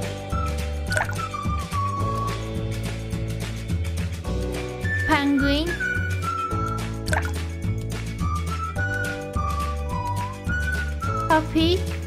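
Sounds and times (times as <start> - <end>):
light instrumental background music: 0.0 - 12.0
water-drop bloop: 0.9 - 1.2, 7.1 - 7.4.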